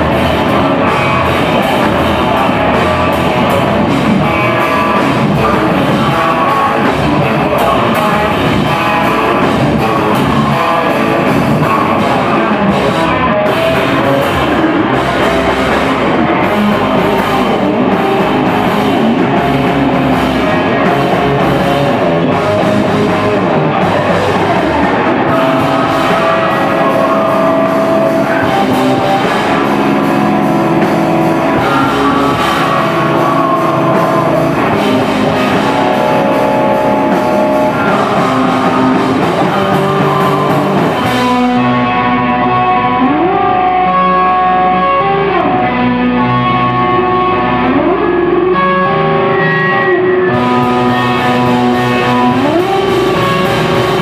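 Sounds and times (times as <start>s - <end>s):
drum kit: 0.0s - 54.0s
electric guitars: 0.0s - 54.0s
loud live rock band: 0.0s - 54.0s.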